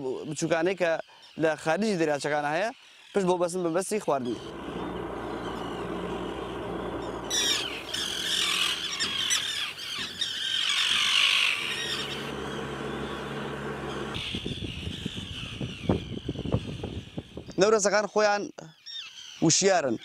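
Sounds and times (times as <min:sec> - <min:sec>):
gulls squawking: 0:04.0 - 0:17.2
low engine hum: 0:04.3 - 0:14.8.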